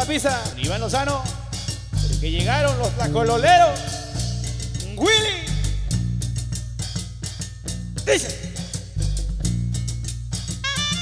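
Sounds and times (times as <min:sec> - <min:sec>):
live band playing: 0:00.0 - 0:06.6, 0:10.5 - 0:11.0
low bass notes: 0:00.0 - 0:11.0
snare and bass drum beat: 0:00.0 - 0:11.0.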